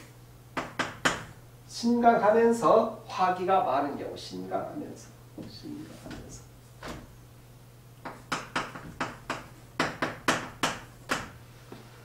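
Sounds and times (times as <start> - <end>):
chalk tapping and scratching on board: 8.0 - 11.4.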